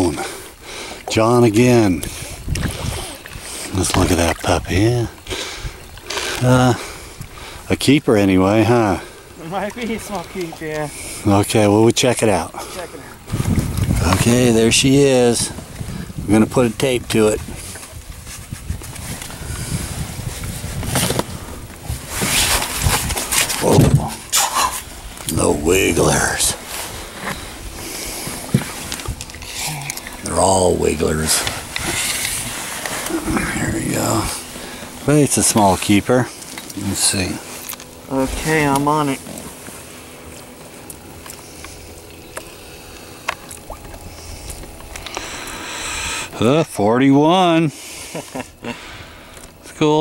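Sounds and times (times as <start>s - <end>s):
boat rumble: 0.0s - 50.0s
wind buffeting microphone: 1.5s - 7.7s, 13.0s - 29.4s.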